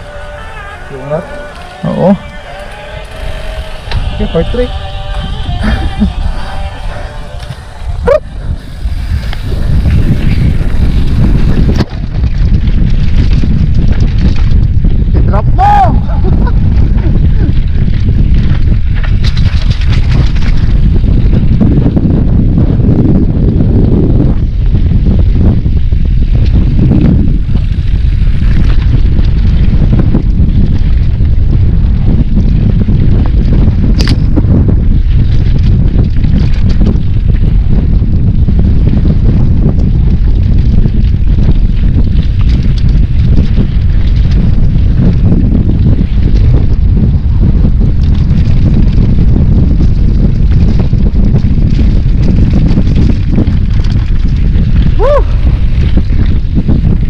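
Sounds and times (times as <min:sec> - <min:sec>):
wind buffeting microphone: 0:00.0 - 0:57.0
bike clicks and knocks: 0:18.3 - 0:21.2, 0:33.8 - 0:34.4.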